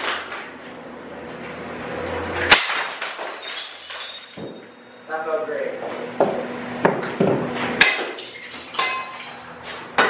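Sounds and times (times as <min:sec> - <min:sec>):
glass smashing: 0:02.5 - 0:05.1, 0:07.8 - 0:09.8
broken glass tinkling: 0:02.7 - 0:05.1, 0:08.2 - 0:09.8.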